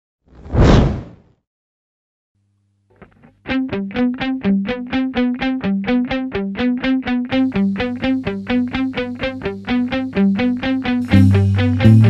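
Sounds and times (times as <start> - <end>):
whoosh sound effect: 0.4 - 1.2.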